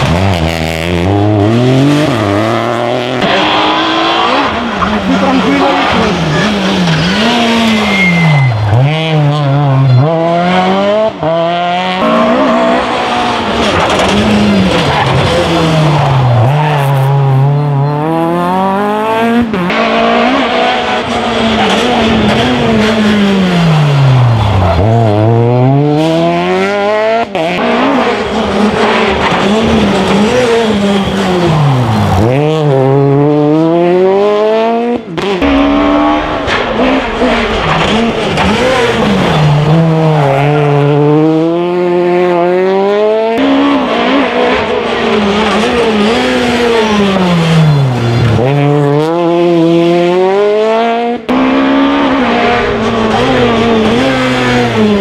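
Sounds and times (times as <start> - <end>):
rally car engines accelerating: 0.0 - 55.0.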